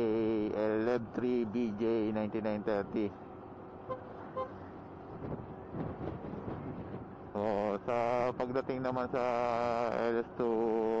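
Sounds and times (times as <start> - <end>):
scooter engine and road noise: 0.0 - 11.0
vehicle horn toots: 3.8 - 4.6.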